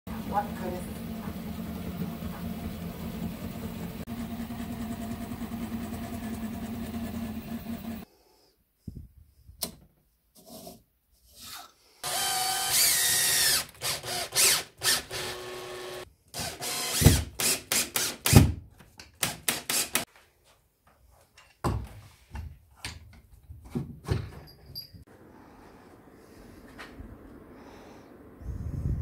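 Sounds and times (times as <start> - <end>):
cordless drill whining: 12.0 - 18.4.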